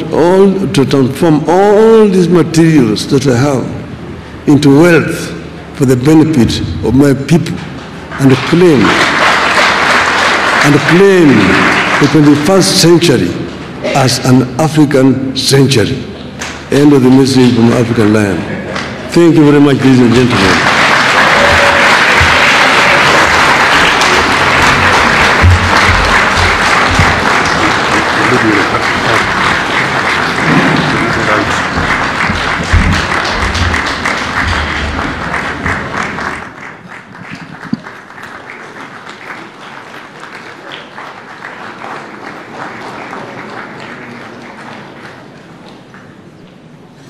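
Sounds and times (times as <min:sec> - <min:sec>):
audience applauding: 0:07.9 - 0:13.0, 0:18.7 - 0:46.3.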